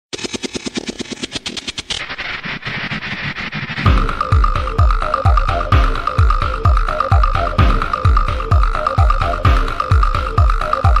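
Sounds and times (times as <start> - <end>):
fast electronic drum roll: 0.1 - 11.0
deep kick drum beat: 3.9 - 11.0.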